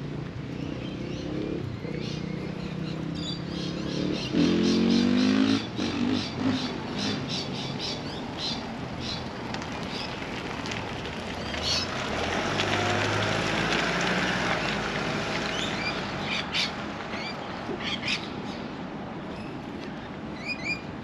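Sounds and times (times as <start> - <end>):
vehicle engine revving: 0.0 - 7.3, 11.6 - 16.3
car approaching: 0.0 - 20.1
birds chirping: 0.4 - 9.3.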